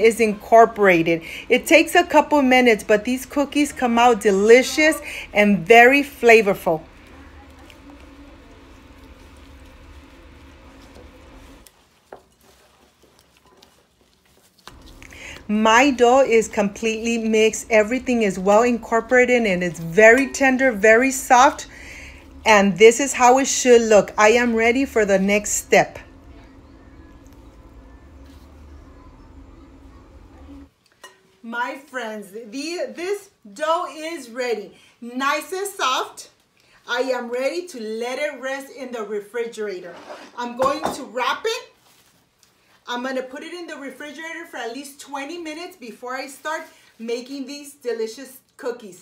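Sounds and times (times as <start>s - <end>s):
woman speaking: 0.0s - 8.7s, 15.1s - 26.7s, 31.4s - 36.3s, 36.9s - 41.7s, 42.9s - 49.0s
low steady hum: 0.0s - 12.6s, 14.7s - 30.7s
hands kneading dough: 6.9s - 17.7s.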